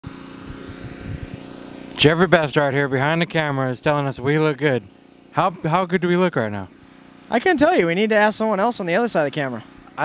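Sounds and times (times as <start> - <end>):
engine drone: 0.0 - 10.0.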